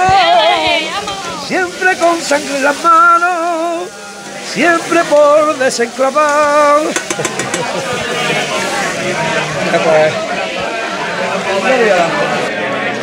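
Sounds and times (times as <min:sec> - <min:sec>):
people talking over one another: 0:00.0 - 0:13.0
people laughing: 0:07.0 - 0:09.4.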